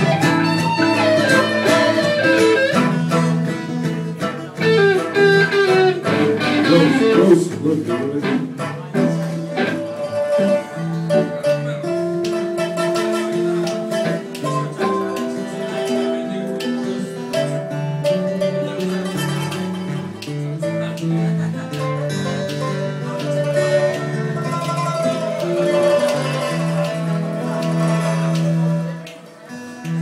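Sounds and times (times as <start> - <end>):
acoustic guitar: 0.0 - 30.0
electric guitar: 0.0 - 30.0
pipa: 0.0 - 30.0.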